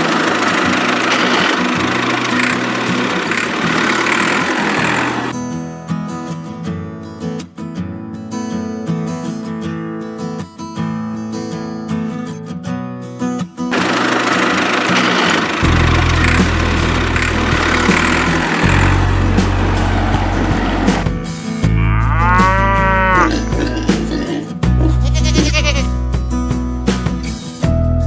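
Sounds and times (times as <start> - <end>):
loud noise: 0.0 - 5.3, 13.7 - 24.4
tractor engine drone: 0.0 - 5.4, 13.7 - 24.4
acoustic guitar music: 0.0 - 28.0
cow mooing: 21.7 - 25.8.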